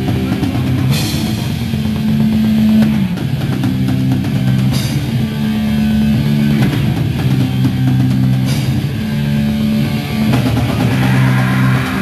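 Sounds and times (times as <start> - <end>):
drum kit: 0.0 - 12.0
electric guitars playing chords: 0.0 - 12.0.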